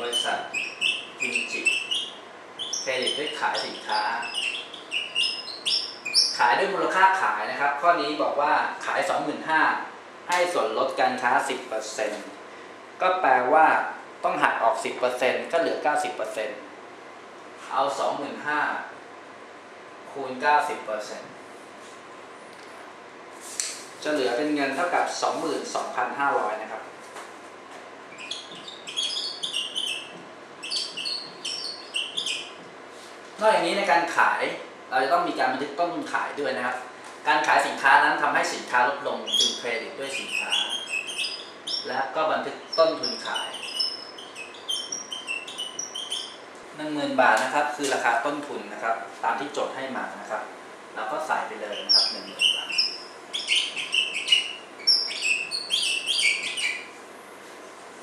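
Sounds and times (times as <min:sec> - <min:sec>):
marker squeaking on whiteboard: 0:00.0 - 0:07.8, 0:28.1 - 0:32.7, 0:37.4 - 0:46.5, 0:51.5 - 0:57.0.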